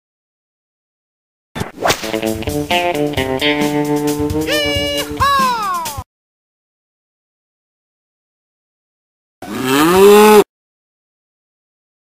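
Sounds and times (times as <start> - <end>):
cow mooing: 9.4 - 10.5.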